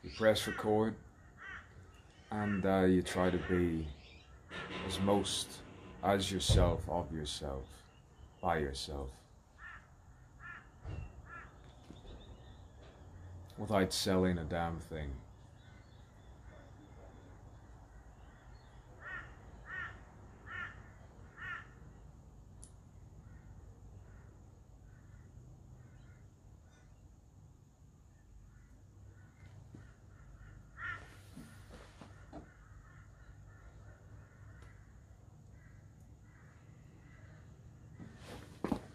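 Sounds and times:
faint outdoor background: 0.0 - 38.9
bird calling faintly: 28.1 - 38.8.

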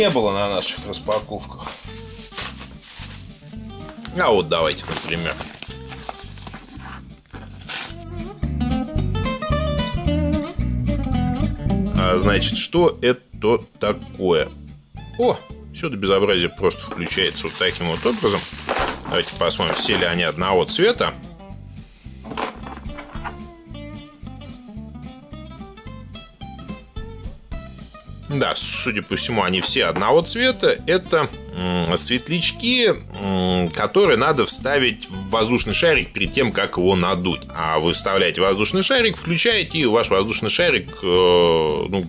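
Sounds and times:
background guitar music: 0.0 - 42.0
packaging rustling: 1.1 - 8.0, 16.8 - 20.9, 22.2 - 23.4
knife slitting open envelope: 1.6 - 8.0, 17.0 - 20.8
plucked guitar-like melody: 22.6 - 27.6.

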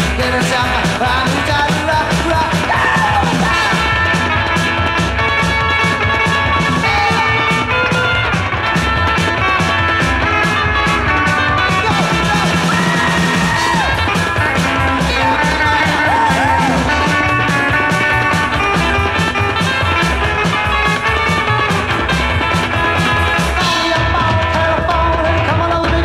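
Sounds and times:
lead electric guitar bending notes: 0.0 - 25.5
fast bass and drum beat: 0.0 - 26.0.

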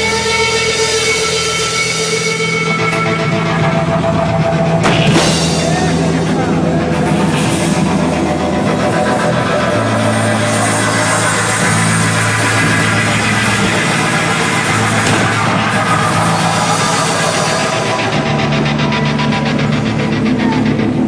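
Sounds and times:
distorted punk band playing live: 0.0 - 21.0
low droning bass line: 0.0 - 21.0.

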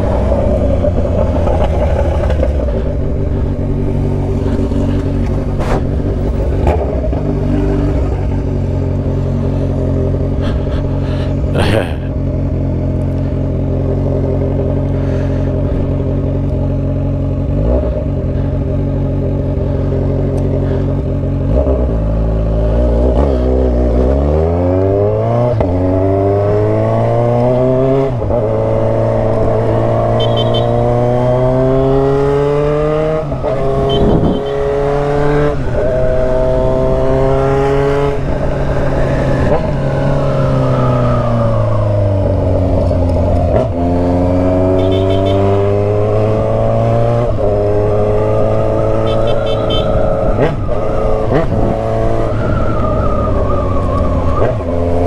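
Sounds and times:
motorcycle engine: 0.0 - 55.0.

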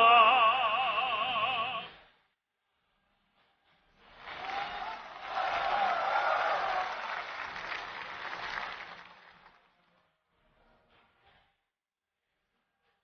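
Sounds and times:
audience applause: 4.1 - 9.6.

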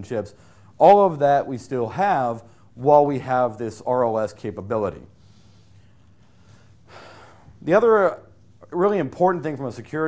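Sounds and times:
microphone hiss: 0.0 - 10.0
man drawing a breath: 5.2 - 7.6.

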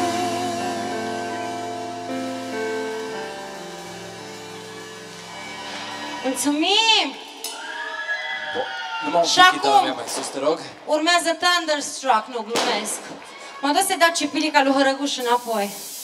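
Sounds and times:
band playing closing chords: 0.0 - 7.3.

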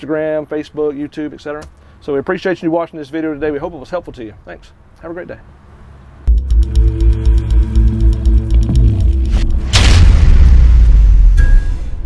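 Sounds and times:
deep sustained rumble: 6.3 - 12.0
whoosh and boom: 8.6 - 12.0.

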